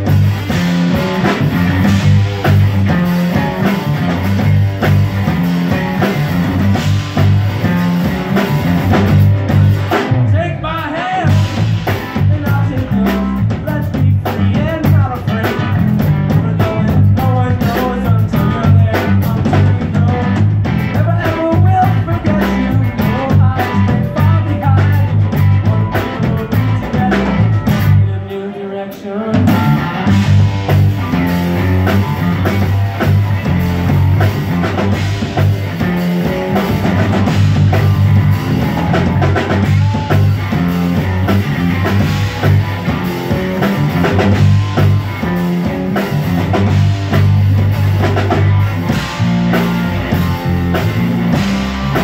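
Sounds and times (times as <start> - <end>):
drum kit steady beat: 0.0 - 28.1, 29.3 - 52.0
electric bass low notes: 0.0 - 28.2, 29.4 - 52.0
electric guitar: 0.0 - 52.0.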